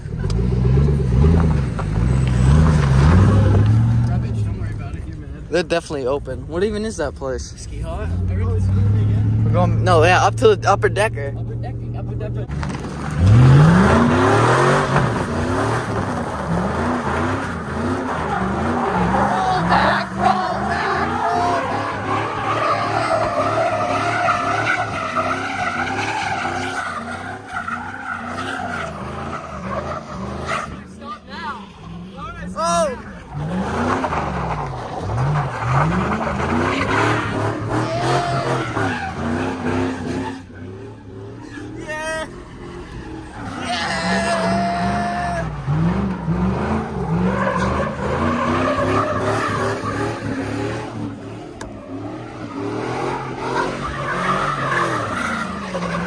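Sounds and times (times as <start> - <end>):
engine revving: 0.0 - 4.9, 6.4 - 32.5, 33.1 - 56.0
tyres squealing: 12.4 - 56.0.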